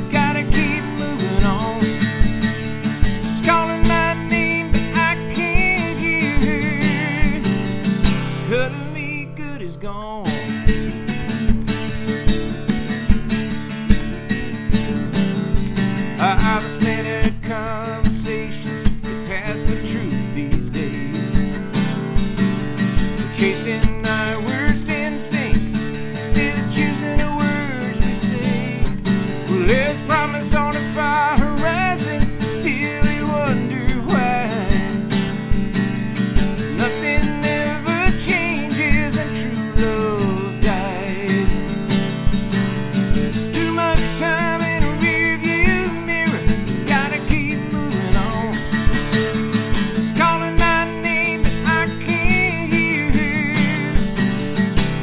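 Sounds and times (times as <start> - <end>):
acoustic guitar country music: 0.0 - 55.0.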